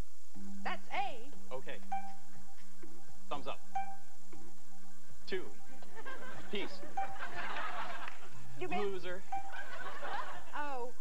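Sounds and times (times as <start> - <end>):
background music: 0.0 - 11.0
studio audience laughing: 5.8 - 8.6, 9.5 - 10.8
person speaking: 6.5 - 7.0, 8.6 - 9.4.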